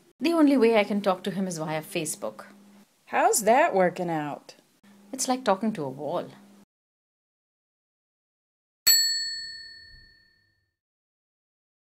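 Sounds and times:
bright bell-like ding: 0:08.9 - 0:10.6.

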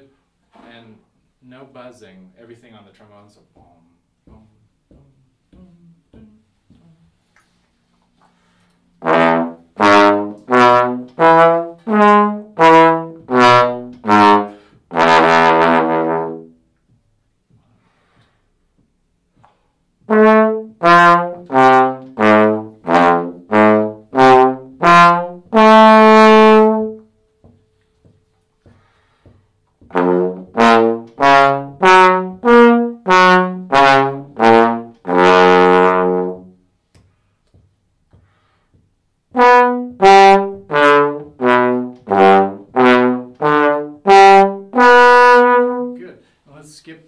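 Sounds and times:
trombone playing short notes: 0:09.0 - 0:16.6, 0:20.0 - 0:27.2, 0:29.8 - 0:36.6, 0:39.3 - 0:46.1.

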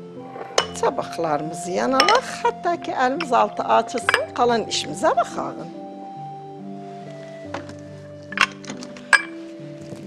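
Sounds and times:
soft background music: 0:00.0 - 0:10.0
glass clinking on glass bowl: 0:02.0 - 0:02.3, 0:04.0 - 0:04.4, 0:08.4 - 0:09.4.

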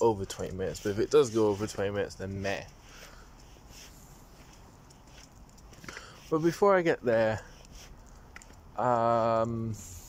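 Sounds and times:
footsteps on wet pavement: 0:00.0 - 0:09.3
light outdoor hiss: 0:00.0 - 0:10.0.

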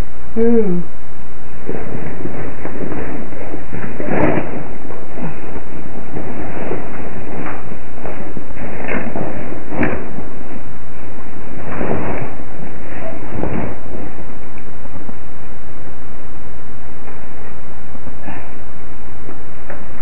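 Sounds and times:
loud steady microphone hiss: 0:00.0 - 0:20.0
knocks and rustles on camera: 0:08.8 - 0:10.3.

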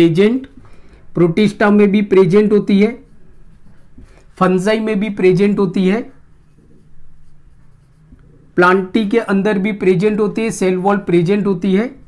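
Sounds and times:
marker writing on whiteboard: 0:01.5 - 0:12.0.

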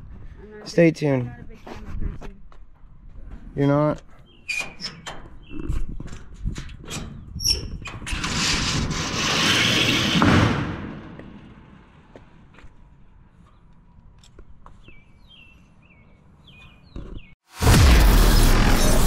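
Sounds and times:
loud rush of noise: 0:17.6 - 0:19.0.

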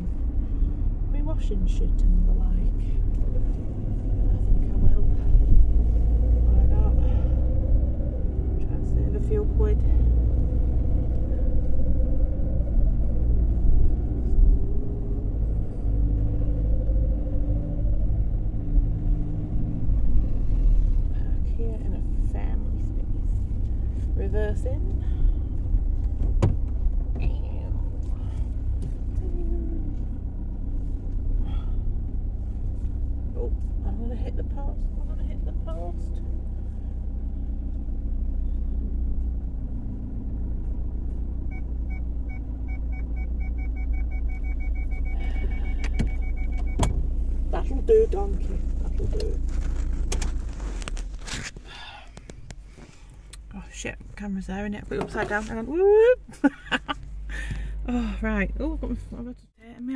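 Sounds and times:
car engine and road rumble: 0:00.0 - 0:59.9
short high beeps: 0:42.3 - 0:46.8.

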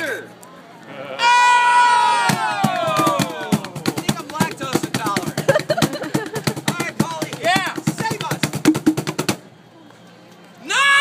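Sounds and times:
fast hand drumming on cajons: 0:02.3 - 0:09.4.

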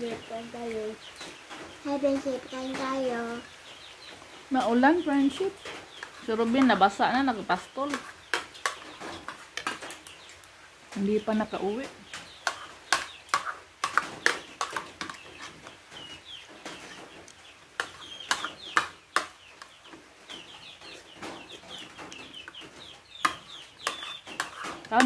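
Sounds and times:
birds chirping: 0:00.0 - 0:25.0.

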